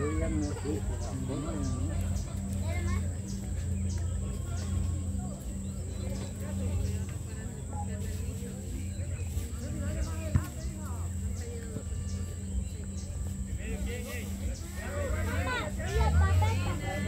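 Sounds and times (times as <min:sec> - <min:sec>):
players and onlookers calling out: 0:00.0 - 0:02.6, 0:13.8 - 0:17.0
steady low hum: 0:00.0 - 0:17.0.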